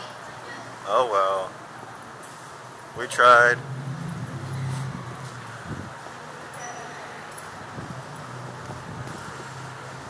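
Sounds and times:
parking garage background noise: 0:00.0 - 0:10.0.

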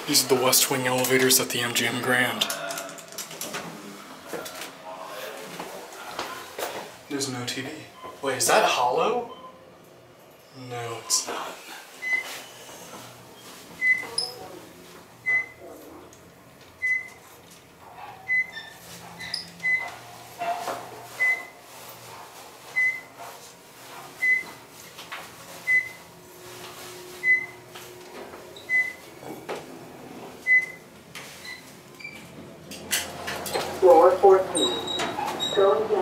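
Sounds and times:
elevator floor-passing beep: 0:12.0 - 0:12.4, 0:13.8 - 0:14.2, 0:15.2 - 0:15.6, 0:21.2 - 0:21.6, 0:22.7 - 0:23.1, 0:24.2 - 0:24.5, 0:25.6 - 0:26.0, 0:27.2 - 0:27.6, 0:28.6 - 0:29.1, 0:30.4 - 0:30.8
elevator ride low hum: 0:12.0 - 0:36.0.

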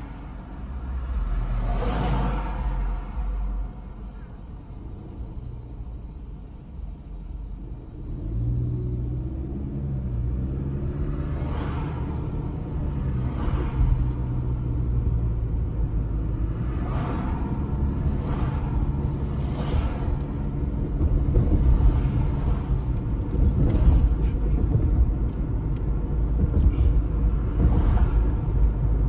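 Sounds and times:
car engine and road noise: 0:00.0 - 0:29.0.

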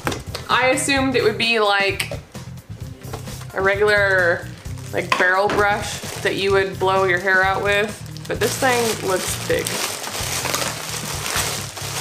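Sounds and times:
low background music: 0:00.0 - 0:12.0
packaging rustling and crinkling: 0:05.8 - 0:06.5, 0:07.9 - 0:12.0.

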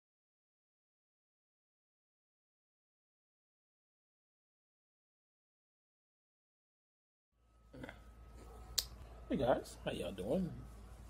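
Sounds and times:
faint background hum: 0:07.4 - 0:11.0.

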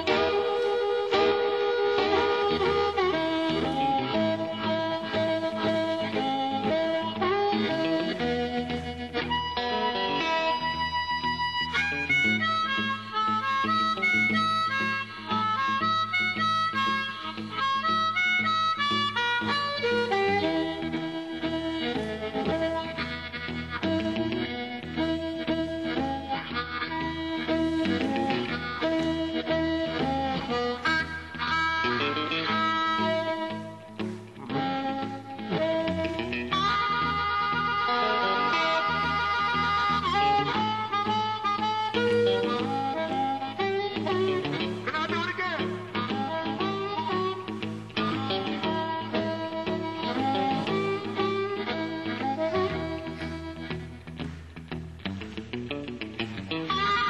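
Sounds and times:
amplified harmonica bent notes: 0:00.0 - 0:57.0
blues band playing: 0:00.0 - 0:57.0.

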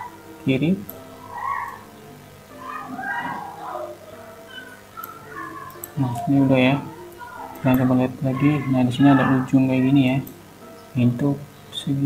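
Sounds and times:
background music: 0:00.0 - 0:12.0
cat meowing: 0:01.2 - 0:01.9, 0:02.5 - 0:04.0, 0:05.2 - 0:05.8, 0:06.9 - 0:09.9.

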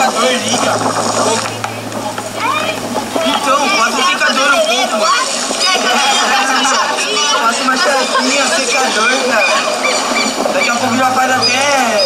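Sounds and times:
people chattering loudly: 0:00.0 - 0:12.0.

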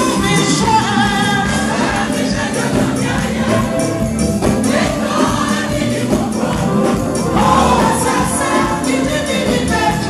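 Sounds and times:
choir singing gospel music: 0:00.0 - 0:10.0.

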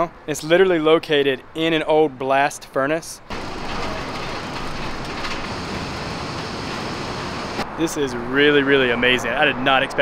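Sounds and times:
inclined elevator running on rails: 0:03.3 - 0:07.6.

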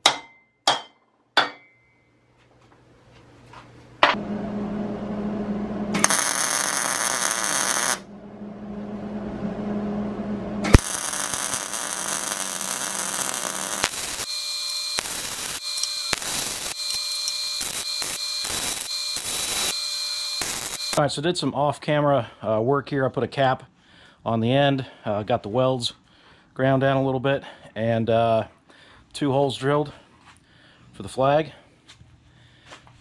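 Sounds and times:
welder arc crackling: 0:05.9 - 0:08.1, 0:10.6 - 0:21.0.

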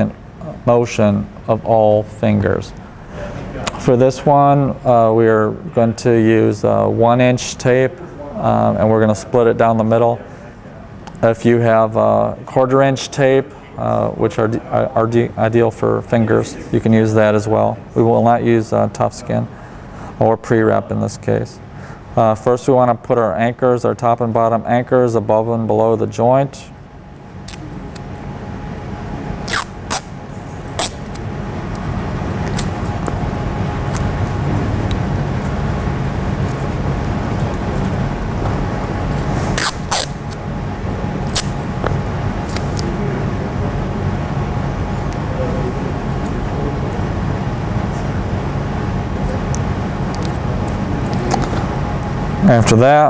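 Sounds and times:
steady low hum: 0:00.0 - 0:53.0
athletic tape tearing: 0:29.4 - 0:30.1, 0:30.7 - 0:31.2, 0:32.5 - 0:32.9, 0:39.2 - 0:40.4, 0:41.3 - 0:41.6, 0:42.4 - 0:42.9.

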